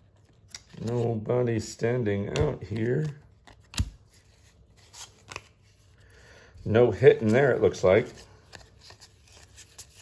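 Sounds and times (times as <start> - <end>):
trading cards rustling: 2.3 - 10.0.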